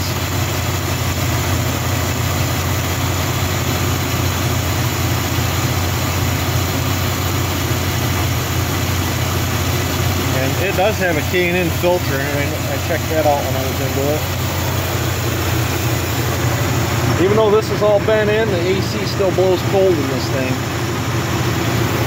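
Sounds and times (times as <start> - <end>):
truck engine idling: 0.0 - 22.0.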